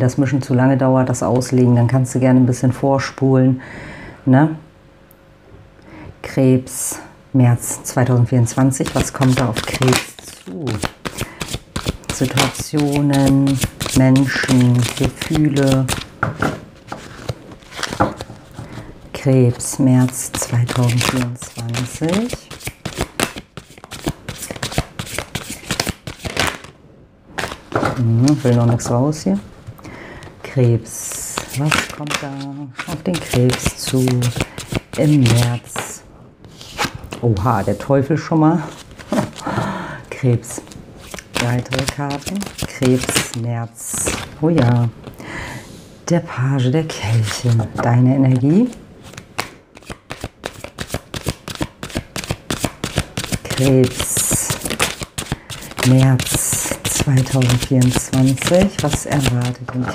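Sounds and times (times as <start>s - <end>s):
cards being shuffled: 8.5s - 18.8s, 19.5s - 26.7s, 27.4s - 28.9s, 31.0s - 37.8s, 38.6s - 39.5s, 40.4s - 45.2s, 47.0s - 59.9s.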